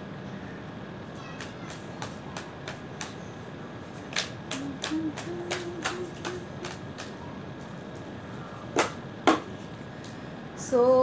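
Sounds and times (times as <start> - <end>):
cards snapping: 4.0 - 7.2.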